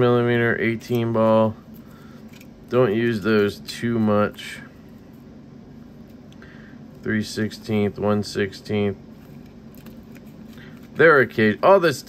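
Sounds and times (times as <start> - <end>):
handling small parts bags: 0.4 - 5.3, 9.0 - 11.6.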